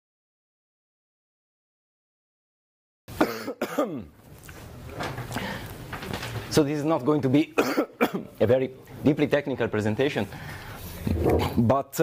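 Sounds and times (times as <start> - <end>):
man coughing: 3.2 - 4.1, 7.6 - 8.3.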